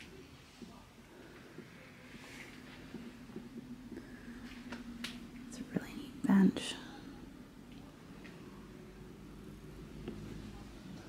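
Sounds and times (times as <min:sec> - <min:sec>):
low steady hum: 0:00.0 - 0:11.0
woman speaking: 0:05.5 - 0:07.2.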